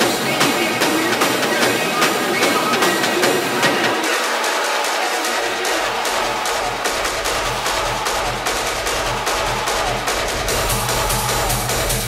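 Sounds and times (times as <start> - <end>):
hard techno mix: 0.0 - 12.0
pounding kick drum: 0.0 - 12.0.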